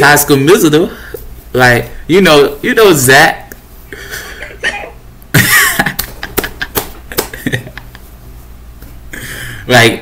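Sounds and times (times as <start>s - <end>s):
man laughing hard: 4.1s - 8.1s.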